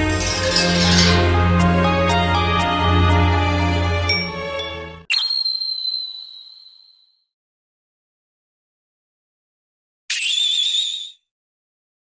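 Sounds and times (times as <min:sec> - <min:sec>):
background music: 0:00.0 - 0:05.1.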